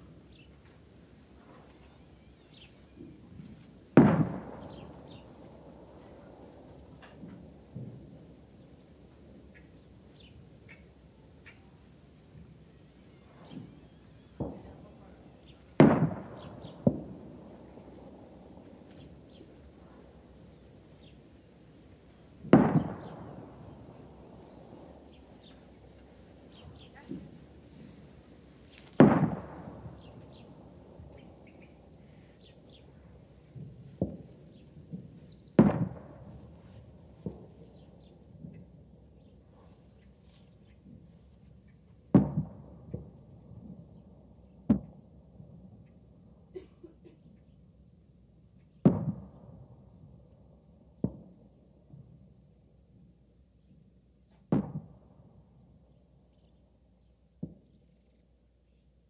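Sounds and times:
faint bird chirps: 1.4s - 3.6s, 9.4s - 15.8s, 56.1s - 59.0s.

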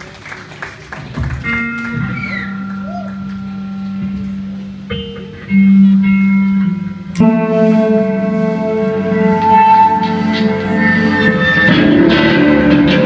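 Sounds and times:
electric guitars sustained notes: 1.3s - 13.0s.

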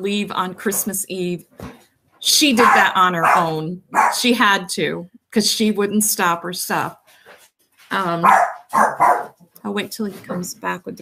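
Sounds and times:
dog barking: 2.6s - 4.2s, 8.2s - 9.4s.

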